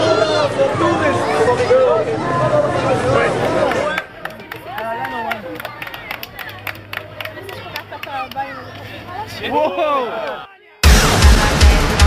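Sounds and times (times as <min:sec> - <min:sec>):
crowd voices: 0:00.0 - 0:12.0
hand claps: 0:03.4 - 0:08.9
background music: 0:10.8 - 0:12.0.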